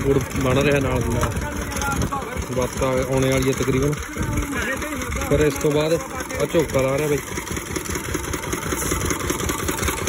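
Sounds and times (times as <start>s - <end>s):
engine running with fast chug: 0.0s - 10.0s.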